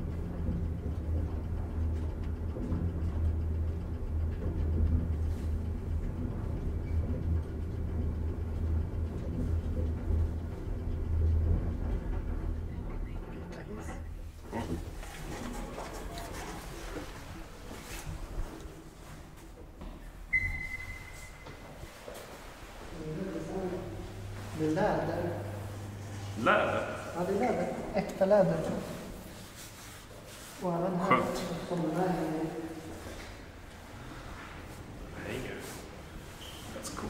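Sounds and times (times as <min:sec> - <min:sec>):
elevator car rumbling: 0:00.0 - 0:29.9
elevator arrival beep: 0:20.3 - 0:21.8.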